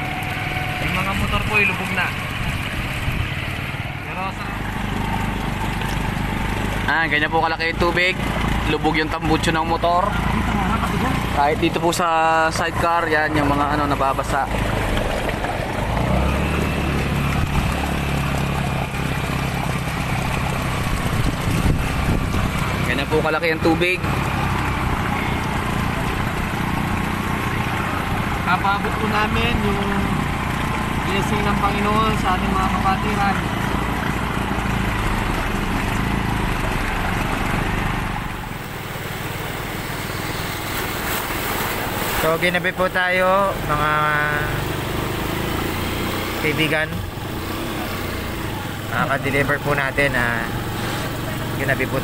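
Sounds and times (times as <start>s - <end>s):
motorcycle engine running: 0.0s - 52.0s
water churning and splashing: 0.0s - 52.0s.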